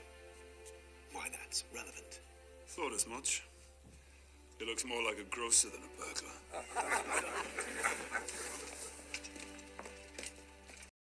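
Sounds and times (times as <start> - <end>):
men laughing: 6.4 - 9.0.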